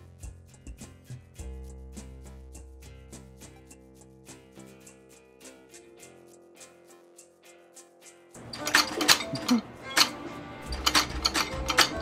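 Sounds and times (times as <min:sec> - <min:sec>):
music: 0:00.0 - 0:12.0
metal shutter clacking: 0:08.4 - 0:12.0.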